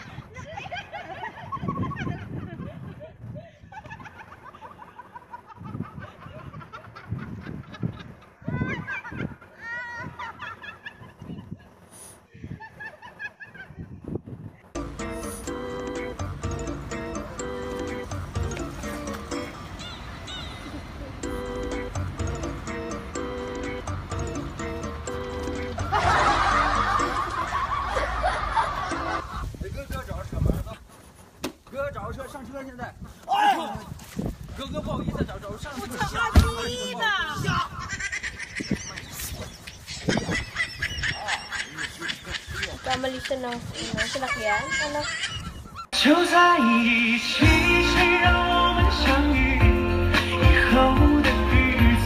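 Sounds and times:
people laughing: 0.0s - 11.8s, 12.4s - 14.0s, 25.7s - 29.6s, 37.5s - 45.9s.

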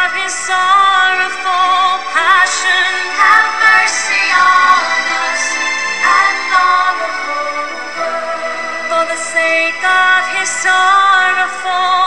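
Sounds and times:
sustained accompaniment: 0.7s - 11.4s.

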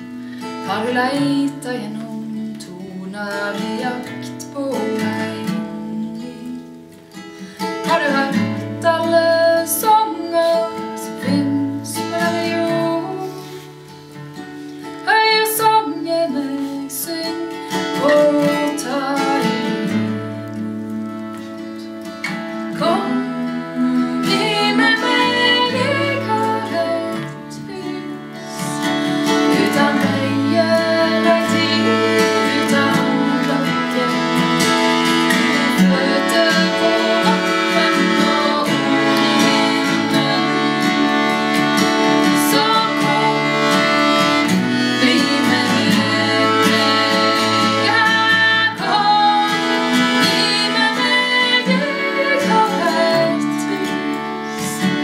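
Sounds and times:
acoustic guitar: 0.0s - 55.0s
button accordion: 15.8s - 55.0s
women singing together: 22.7s - 55.0s.

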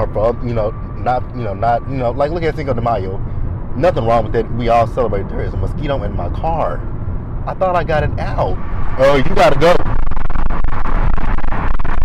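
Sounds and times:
wind buffeting microphone in car: 0.0s - 12.0s.

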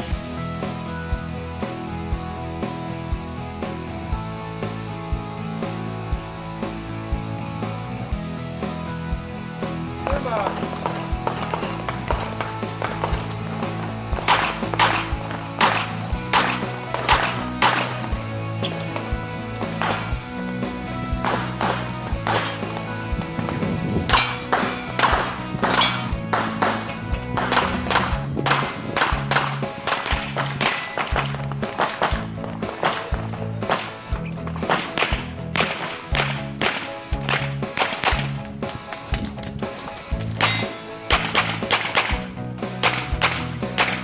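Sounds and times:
background music with bass line: 0.0s - 44.0s
sharp percussive hits: 14.2s - 18.1s, 24.1s - 32.2s, 40.4s - 42.2s.

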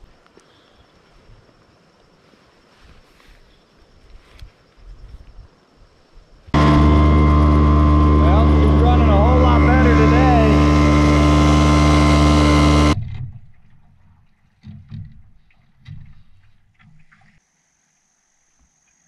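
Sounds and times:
outboard motor running: 6.6s - 13.0s.

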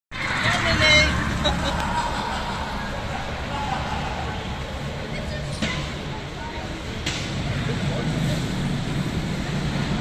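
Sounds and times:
go-kart driving past: 0.1s - 10.0s
people's voices: 0.2s - 8.9s.

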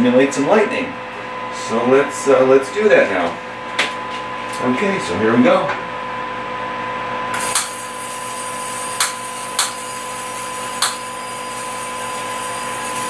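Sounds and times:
steady electrical hum: 0.0s - 13.0s
sharp spark snaps: 7.4s - 7.8s.

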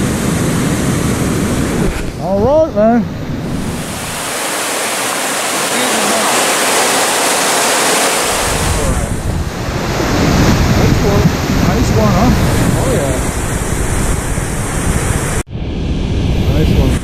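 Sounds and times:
turbulent creek water rushing: 3.0s - 13.7s.

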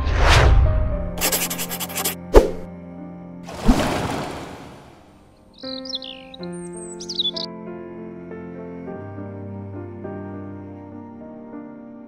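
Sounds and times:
birds chirping: 3.9s - 7.5s.

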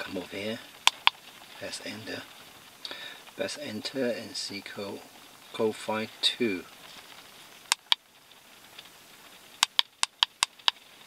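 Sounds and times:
code reader button ticks: 7.7s - 8.0s.

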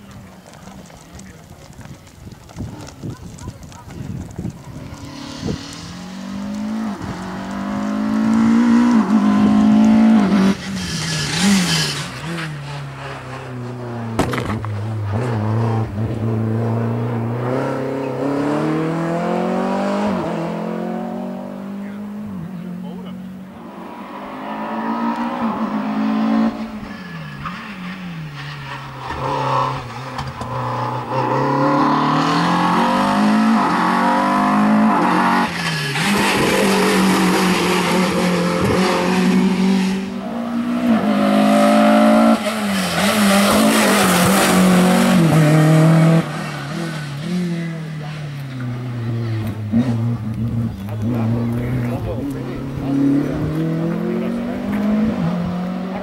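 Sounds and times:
race car engine revving: 4.5s - 56.0s.

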